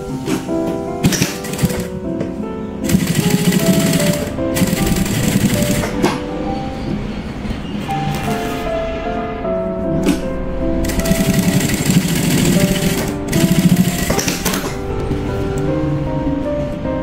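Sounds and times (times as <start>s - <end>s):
background music: 0.0s - 17.0s
sewing machine stitching: 1.0s - 2.0s, 2.8s - 6.0s, 10.8s - 14.8s.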